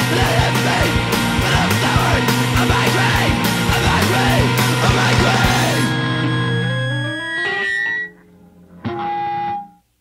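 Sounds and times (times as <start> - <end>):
rock band playing: 0.0 - 9.6
loud electric guitar chord: 1.0 - 9.7.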